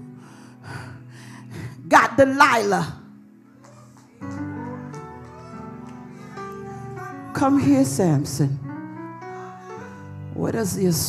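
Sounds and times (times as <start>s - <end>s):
person preaching: 6.6s - 8.4s.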